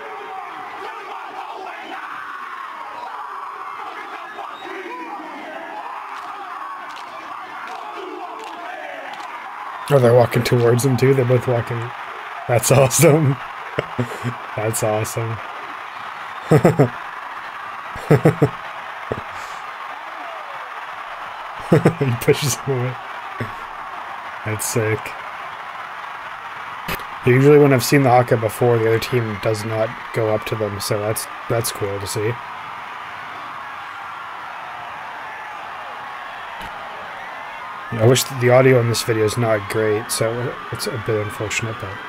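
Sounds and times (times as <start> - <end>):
loud stadium crowd: 0.0 - 42.0
players shouting a chant: 0.0 - 42.0
man chuckling: 13.8 - 14.4, 16.5 - 17.0, 18.0 - 19.2, 21.7 - 22.2.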